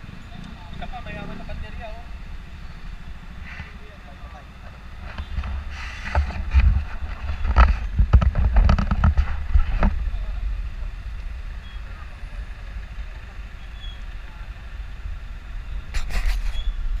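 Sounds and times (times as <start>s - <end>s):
low rumble of traffic: 0.0s - 17.0s.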